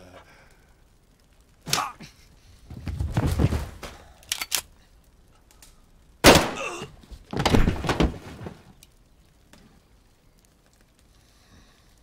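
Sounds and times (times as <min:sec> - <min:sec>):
scuffling and thuds: 0:02.7 - 0:04.0, 0:07.0 - 0:08.8.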